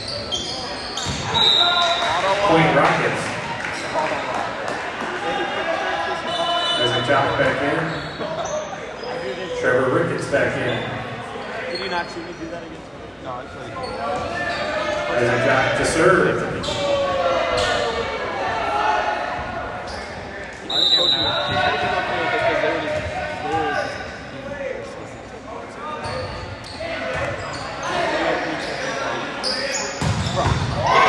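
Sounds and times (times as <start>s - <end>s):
echoing voices: 13.5s - 30.0s.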